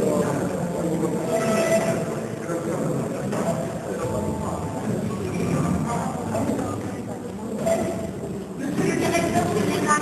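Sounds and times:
chatter of many voices: 0.0 - 10.0.

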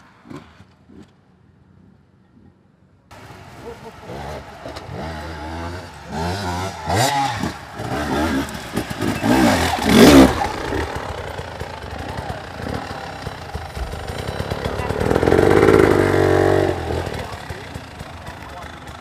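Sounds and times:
motorcycle engine revving: 3.1 - 19.0.

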